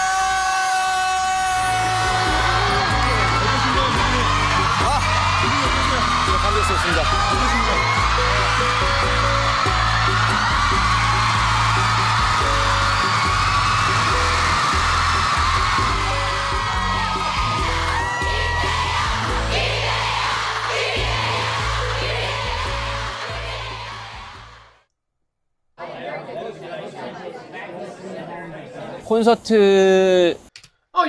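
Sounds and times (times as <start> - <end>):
crowd screaming and cheering: 0.0 - 24.8
live concert music: 1.6 - 24.5.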